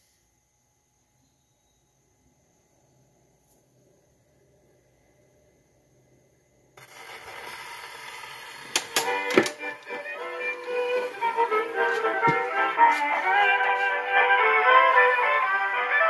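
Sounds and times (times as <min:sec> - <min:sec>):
record surface hiss: 0:00.0 - 0:16.0
phonograph music: 0:06.8 - 0:16.0.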